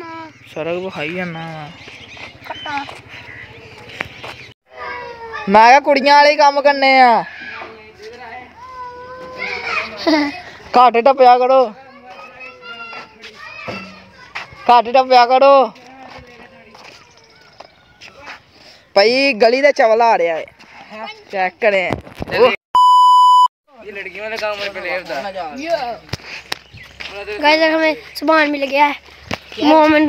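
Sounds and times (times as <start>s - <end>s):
distant children's voices: 2.3s - 5.7s, 7.3s - 10.7s, 11.7s - 14.9s, 15.8s - 18.5s
high-pitched censor bleep: 22.8s - 23.5s.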